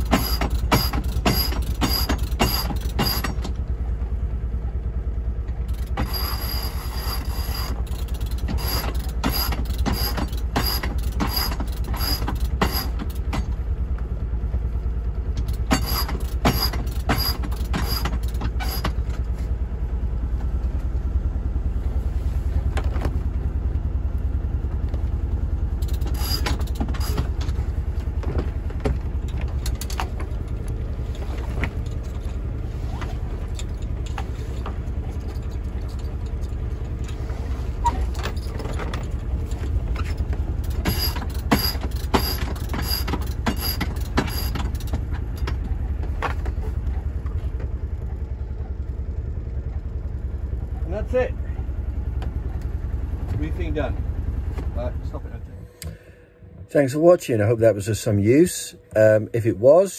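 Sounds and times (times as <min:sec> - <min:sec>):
steady low rumble: 0:00.0 - 0:59.7.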